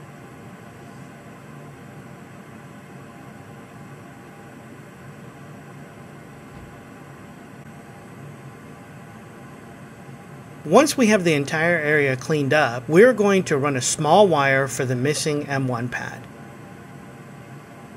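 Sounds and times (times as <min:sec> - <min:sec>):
faint hum: 0:00.0 - 0:17.9
steady low hiss: 0:00.0 - 0:17.9.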